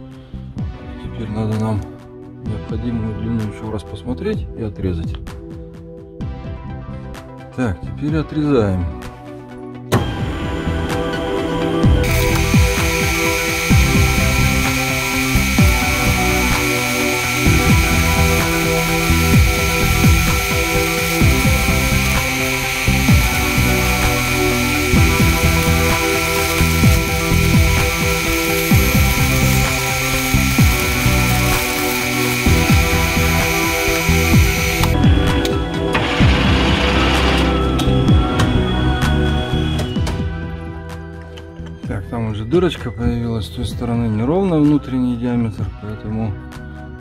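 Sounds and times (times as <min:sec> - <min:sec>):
background music: 0:00.0 - 0:47.0
metal lathe cutting whine: 0:12.0 - 0:35.0.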